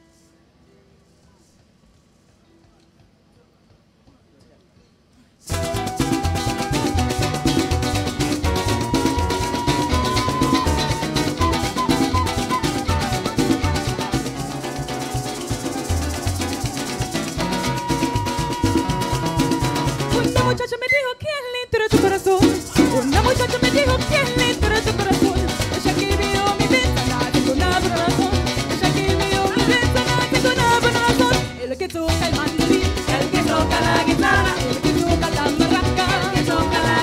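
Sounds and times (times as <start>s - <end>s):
guitars strumming: 5.5s - 20.6s, 21.9s - 37.0s
steady percussion: 5.5s - 20.6s, 21.9s - 37.0s
sustained melody: 5.5s - 20.6s.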